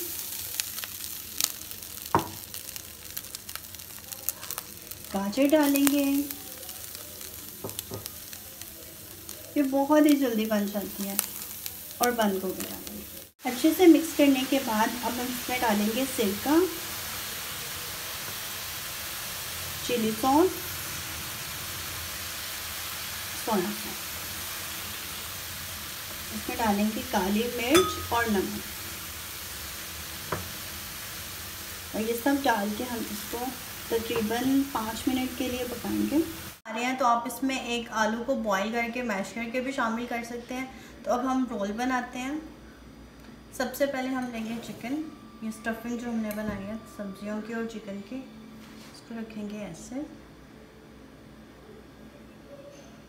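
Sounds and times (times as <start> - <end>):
chicken sizzling in a hot pan: 0.0 - 36.6.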